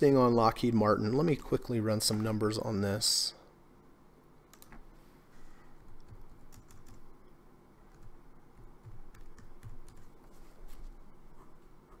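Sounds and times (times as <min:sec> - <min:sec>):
typing on computer keyboard: 0:05.8 - 0:07.1, 0:07.9 - 0:10.1.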